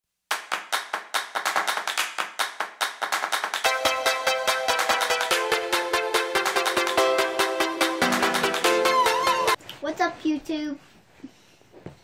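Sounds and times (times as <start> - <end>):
rhythmic handclaps: 0.3 - 9.6.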